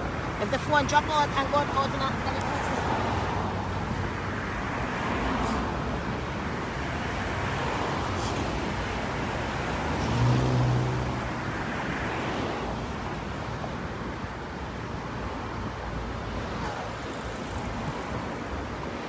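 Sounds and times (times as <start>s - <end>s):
passing cars: 0.0s - 19.0s.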